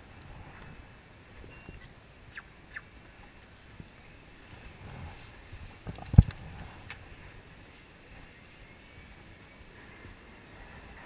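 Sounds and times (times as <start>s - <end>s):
faint outdoor background noise: 0.0s - 11.0s
barcode scanner beep: 1.5s - 1.9s.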